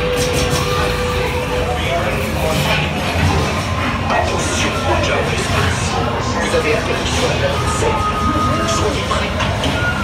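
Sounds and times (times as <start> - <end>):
ride vehicle rumbling on track: 0.0 - 10.0.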